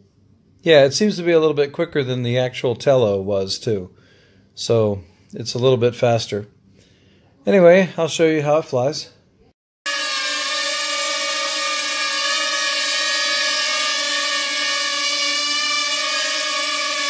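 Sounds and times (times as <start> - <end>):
drone motors whining: 9.9 - 17.0.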